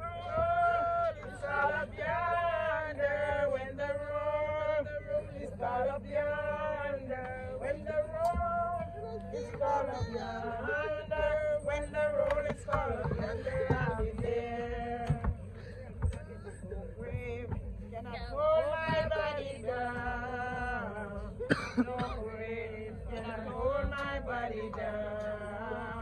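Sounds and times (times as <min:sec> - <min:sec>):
people singing a gospel hymn: 0:00.0 - 0:26.0.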